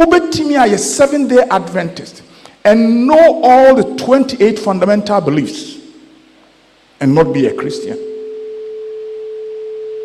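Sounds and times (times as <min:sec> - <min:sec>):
microphone feedback ringing tone: 0:07.5 - 0:10.0.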